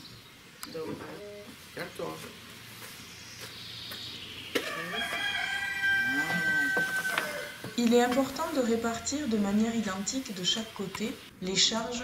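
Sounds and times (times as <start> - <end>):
rooster crowing: 4.6 - 7.8.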